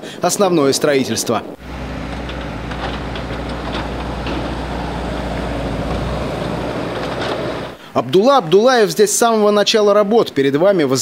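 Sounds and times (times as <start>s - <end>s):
loader engine running: 1.6s - 7.9s.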